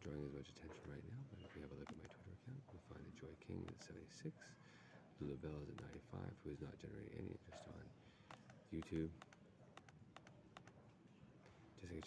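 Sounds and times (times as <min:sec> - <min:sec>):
faint laptop key clicks: 0:01.8 - 0:02.2, 0:03.6 - 0:03.9, 0:05.7 - 0:06.1, 0:08.2 - 0:10.8.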